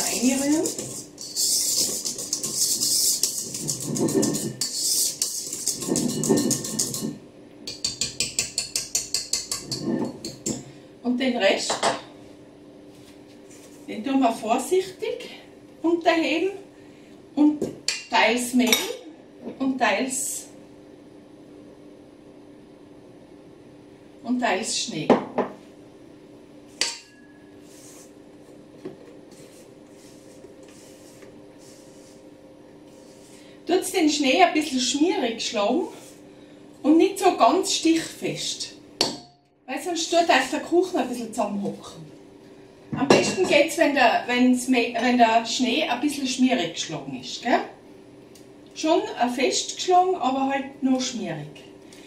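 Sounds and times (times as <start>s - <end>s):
soft scraping in bowl: 0.0s - 7.2s, 9.6s - 10.2s, 27.4s - 28.2s, 29.0s - 33.6s, 35.9s - 36.3s
whisk beating in metal bowl: 0.0s - 10.6s.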